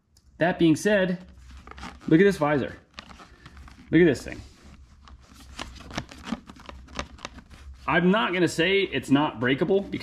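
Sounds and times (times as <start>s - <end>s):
fabric bag rustling: 1.2s - 8.0s.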